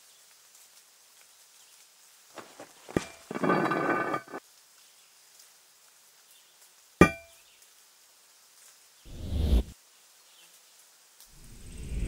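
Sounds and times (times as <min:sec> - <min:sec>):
metal grating scrape: 0:02.4 - 0:04.4.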